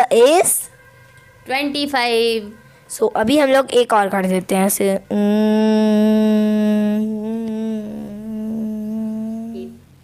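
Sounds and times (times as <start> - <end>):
woman humming: 5.1 - 9.9.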